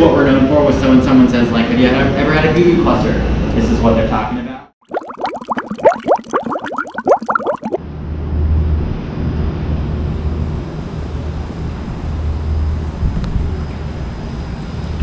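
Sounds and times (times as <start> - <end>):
bubbly gliding tones: 4.8 - 7.8.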